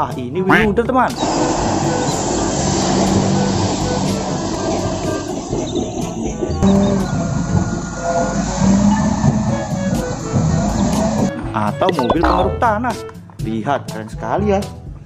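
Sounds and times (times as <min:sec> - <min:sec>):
wheel loader diesel engine running: 0:00.6 - 0:12.5.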